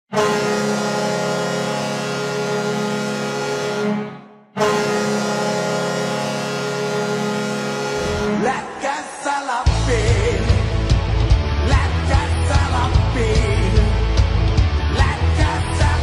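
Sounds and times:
arena goal horn blasts: 0:00.1 - 0:08.8.

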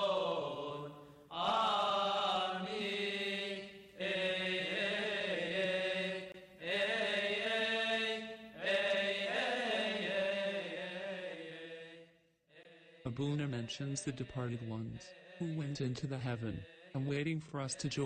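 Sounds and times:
person singing liturgical chant: 0:00.0 - 0:18.0.

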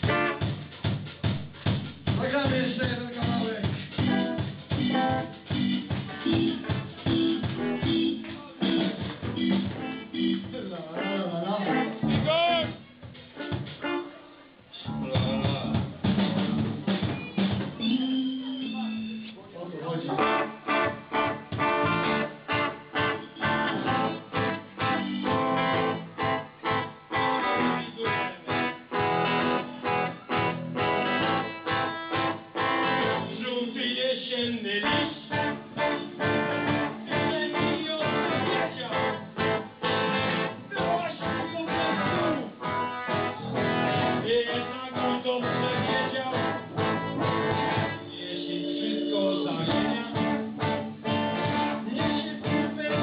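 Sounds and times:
live punk rock band: 0:00.0 - 0:10.7, 0:14.9 - 0:17.8, 0:20.2 - 0:33.5, 0:34.8 - 0:48.2, 0:49.6 - 0:53.0
snare and bass drum beat: 0:00.0 - 0:10.7, 0:12.0 - 0:14.0, 0:15.0 - 0:17.8, 0:20.2 - 0:33.3, 0:45.6 - 0:48.0, 0:49.7 - 0:53.0.

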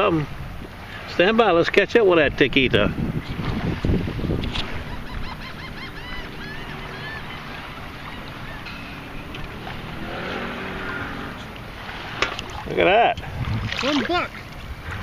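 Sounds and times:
wind on microphone: 0:02.1 - 0:15.0
metal scoop sloshing through water: 0:07.5 - 0:12.8.

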